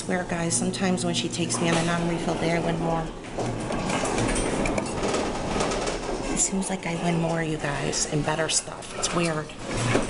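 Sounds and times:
claw machine mechanical rattle: 0:00.2 - 0:10.0.

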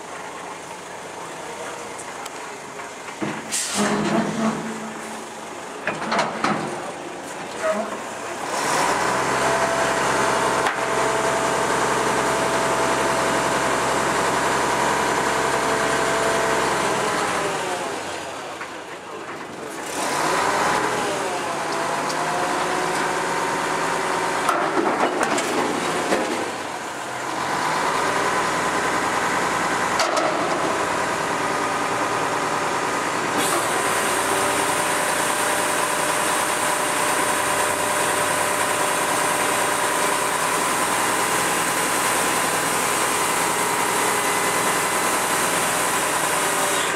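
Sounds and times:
truck engine running at raised revs: 0:06.7 - 0:46.9.

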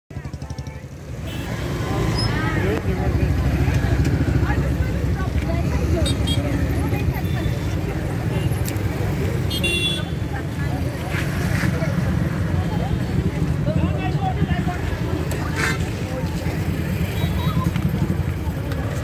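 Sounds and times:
crowd voices: 0:00.1 - 0:19.0
motorcycle and car engines rumbling: 0:00.1 - 0:19.0
vehicle horn toots: 0:09.5 - 0:10.2.

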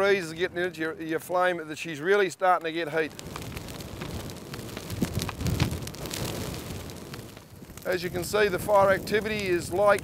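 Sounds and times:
wood crackling and popping: 0:01.0 - 0:10.0
bonfire flames rushing: 0:02.2 - 0:10.0.

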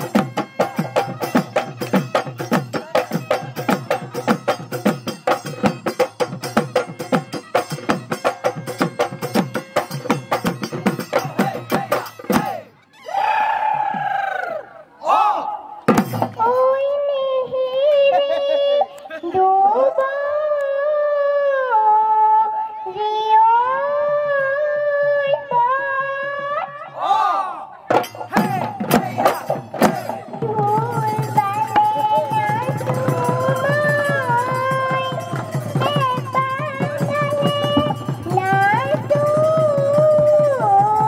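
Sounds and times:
folk drums fast rhythm: 0:00.0 - 0:12.7, 0:15.9 - 0:16.5, 0:27.9 - 0:41.0
girl singing: 0:16.4 - 0:26.8, 0:30.2 - 0:41.0.

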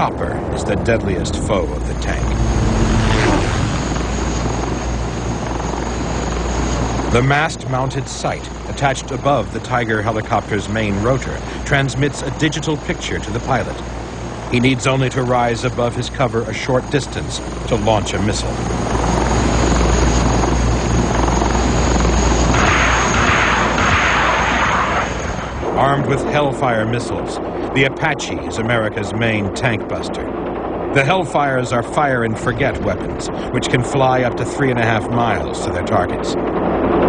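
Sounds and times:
helicopter flying low: 0:00.0 - 0:37.0.

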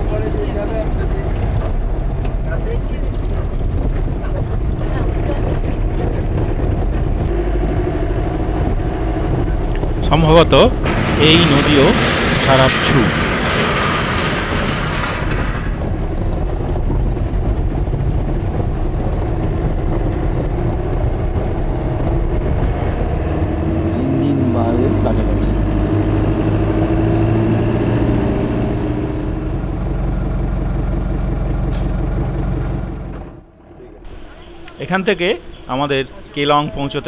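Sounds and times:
road noise rumble inside car: 0:00.0 - 0:13.0, 0:15.8 - 0:34.8
car engine hum: 0:00.0 - 0:36.8.

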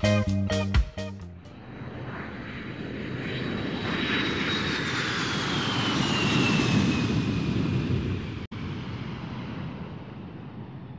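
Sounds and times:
jet airplane passing: 0:01.3 - 0:10.9.

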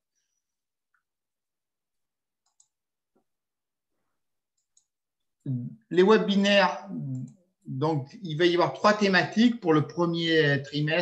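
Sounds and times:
man speaking: 0:05.5 - 0:11.0.

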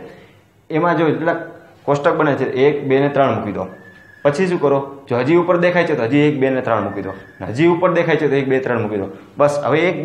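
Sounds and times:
man speaking: 0:00.7 - 0:10.0
faint steady high tone: 0:02.1 - 0:09.3.

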